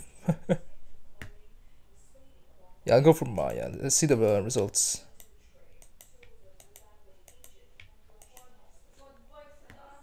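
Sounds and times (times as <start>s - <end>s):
person laughing: 0.0s - 0.7s
computer mouse click: 5.2s - 8.5s.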